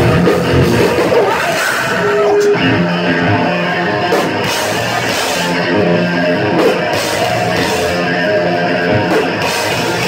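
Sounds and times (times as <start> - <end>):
drums: 0.0 - 10.0
electric guitar: 0.0 - 10.0.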